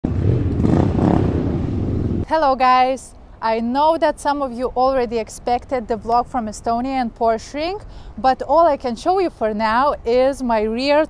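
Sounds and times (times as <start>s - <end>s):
motorcycle engine rumble: 0.0s - 2.3s.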